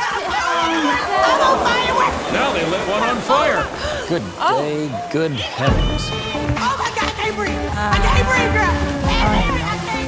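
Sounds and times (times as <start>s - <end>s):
women shouting and shrieking: 0.0s - 4.6s.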